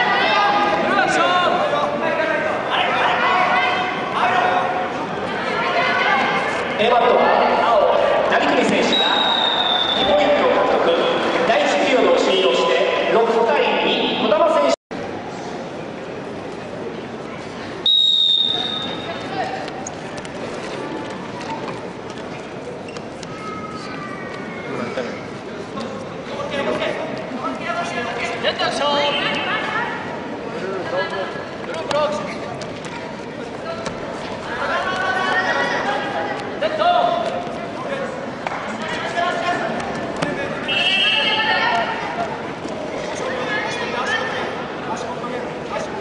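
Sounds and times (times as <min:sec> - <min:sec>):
murmur of voices: 0:00.0 - 0:46.0
referee's whistle blast: 0:17.8 - 0:19.0.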